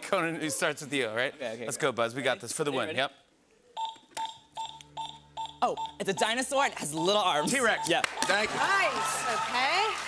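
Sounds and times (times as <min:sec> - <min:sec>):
short high timer beeps: 0:03.8 - 0:08.4.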